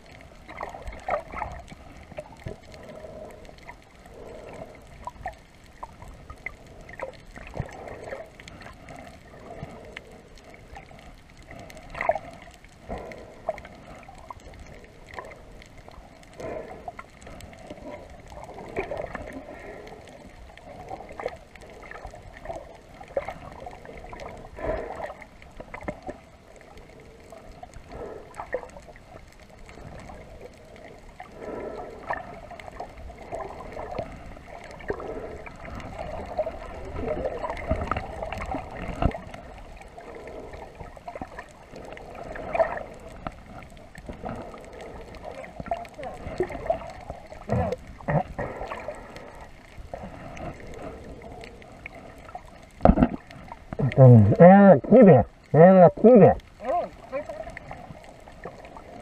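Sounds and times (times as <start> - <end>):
water gurgling underwater: 0.0 - 59.0
underwater knocks and clicks: 31.5 - 56.4.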